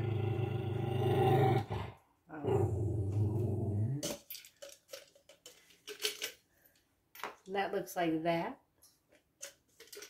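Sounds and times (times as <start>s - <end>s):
cat growling: 0.0s - 4.0s.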